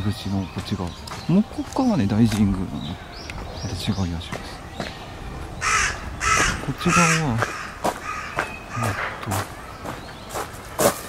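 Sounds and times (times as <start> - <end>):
crow cawing: 5.6 - 9.7.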